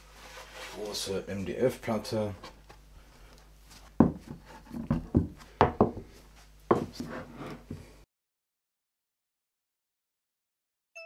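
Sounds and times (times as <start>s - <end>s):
knocks and taps on wooden board: 4.0s - 6.0s.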